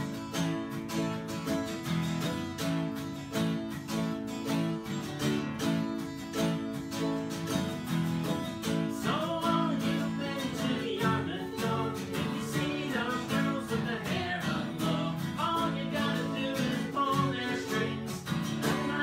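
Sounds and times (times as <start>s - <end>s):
acoustic guitar strumming: 0.0s - 19.0s
person singing: 8.8s - 19.0s.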